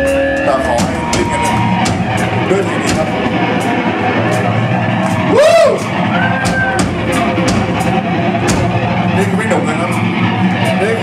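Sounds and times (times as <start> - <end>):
loud bending guitar note: 0.0 - 10.8
rock band playing: 0.0 - 11.0.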